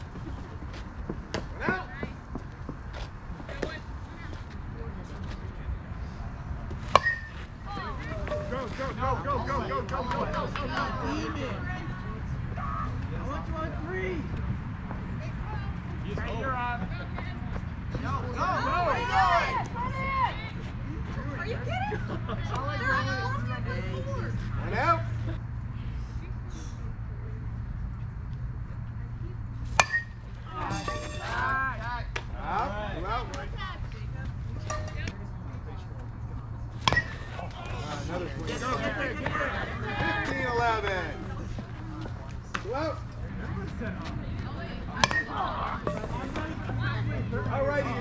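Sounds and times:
bat hitting ball crack: 6.9 - 7.4, 29.7 - 31.3.

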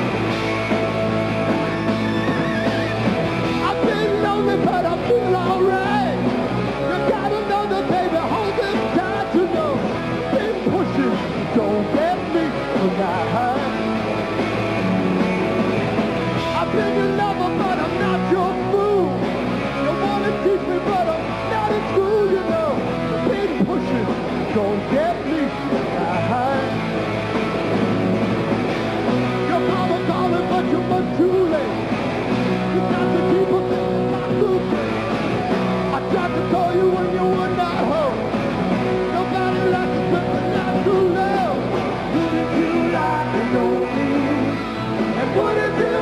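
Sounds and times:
hard rock band playing: 0.0 - 46.0
lead vocal singing: 6.9 - 13.8, 19.9 - 26.8, 39.1 - 46.0.

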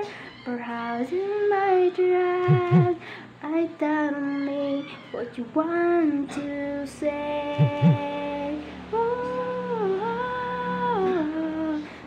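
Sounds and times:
woman singing held notes: 6.0 - 8.4.

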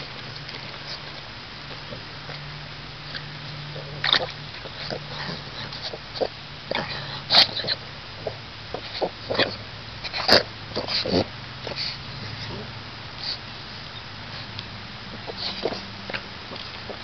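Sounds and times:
dog noises: 0.0 - 17.0.

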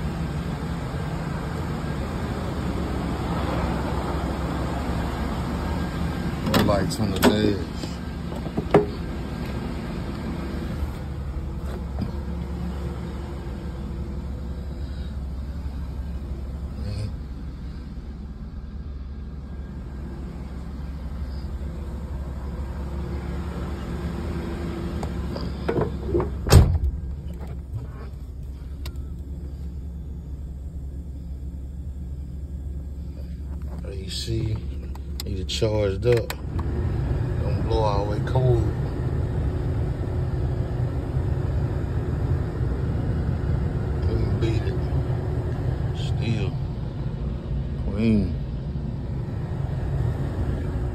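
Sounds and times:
car engine idling: 0.0 - 50.9.

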